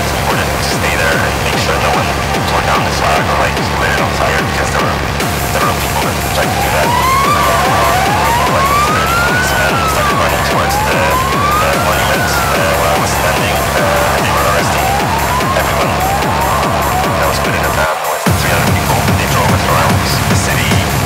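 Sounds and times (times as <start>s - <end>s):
fast techno track: 0.0s - 21.0s
siren-like sweeping tone: 5.6s - 17.9s.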